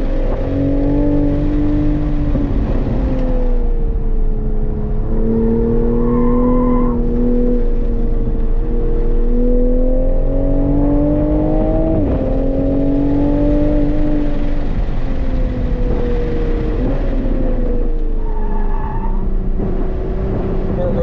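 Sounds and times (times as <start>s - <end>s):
car engine revving: 0.0s - 21.0s.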